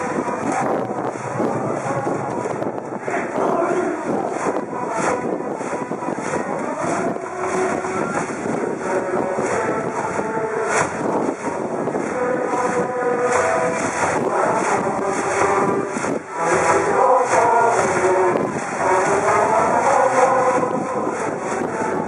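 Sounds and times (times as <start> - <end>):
crowd cheering: 0.0 - 22.0
percussion beat: 0.0 - 22.0.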